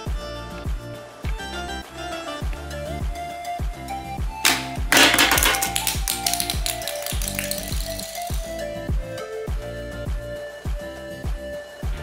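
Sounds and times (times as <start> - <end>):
plastic toy snapping and clattering: 4.5 - 8.5
background music with steady beat: 4.5 - 8.6.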